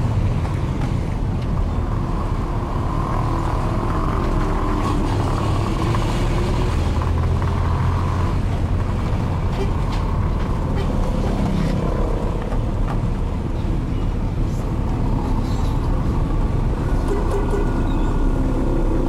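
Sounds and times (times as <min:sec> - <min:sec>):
vehicle engine and road noise: 0:00.0 - 0:19.0.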